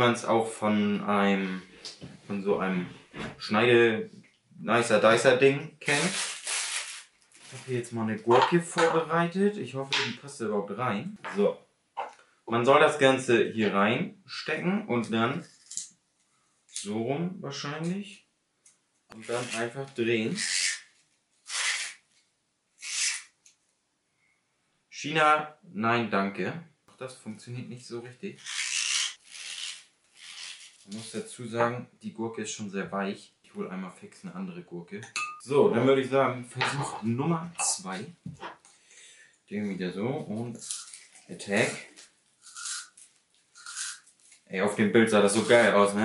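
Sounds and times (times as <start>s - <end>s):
spiral cutter rasping cucumber: 28.4s - 30.8s.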